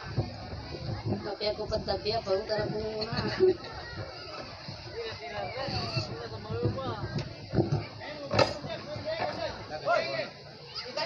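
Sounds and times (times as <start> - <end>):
voices talking over one another: 0.0 - 11.0.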